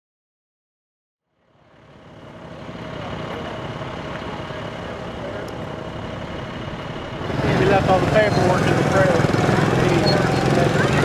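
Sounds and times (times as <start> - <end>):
small motorcycles idling: 1.3 - 11.0
background talk: 2.5 - 11.0.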